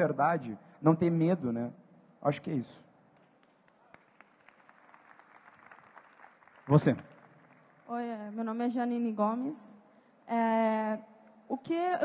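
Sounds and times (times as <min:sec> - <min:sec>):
audience clapping: 0:03.1 - 0:08.6.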